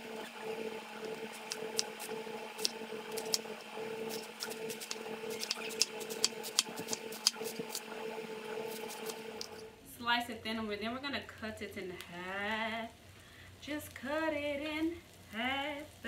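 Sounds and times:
steady low hum: 0.0 - 10.0
knife slicing cabbage on board: 1.3 - 7.9, 8.7 - 9.5.

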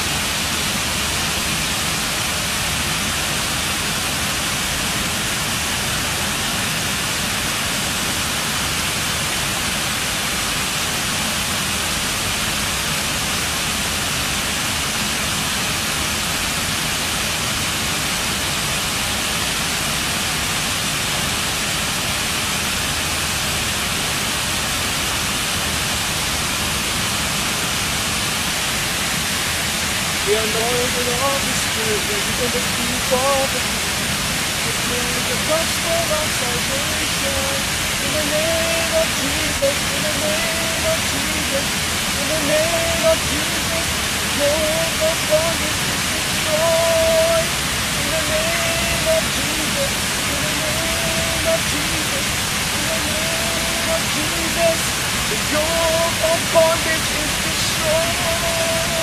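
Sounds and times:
fountain water rushing: 0.0 - 59.0.

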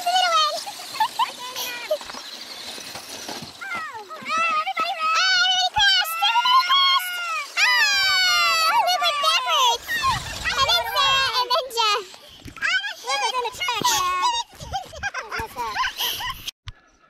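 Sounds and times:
children calling and shouting: 0.0 - 16.0.

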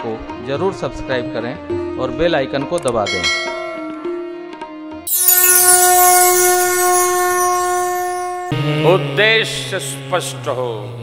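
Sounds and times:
shimmering glitter sliding downward: 5.1 - 8.6
held tone: 5.1 - 9.1
loud sustained drone note: 5.1 - 9.3.

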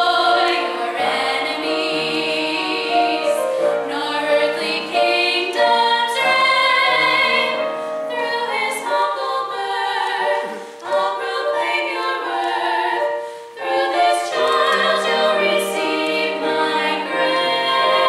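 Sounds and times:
women singing together: 0.0 - 18.0
singers breathing: 7.7 - 8.1, 10.4 - 10.8, 13.2 - 13.6.

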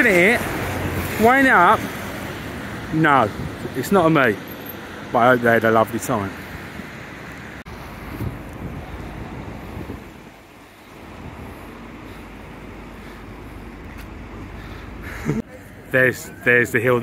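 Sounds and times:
wind on microphone: 7.7 - 11.9.

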